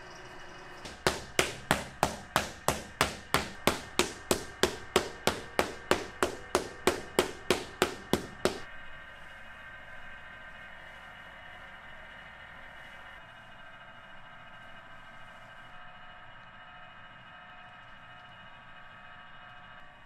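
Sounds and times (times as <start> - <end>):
hand paddle beating clay: 0.8 - 8.7.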